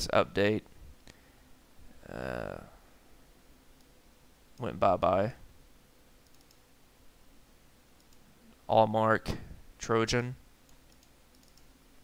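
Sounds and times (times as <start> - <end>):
faint computer mouse clicks: 6.2 - 6.6, 8.0 - 8.2, 10.7 - 11.7.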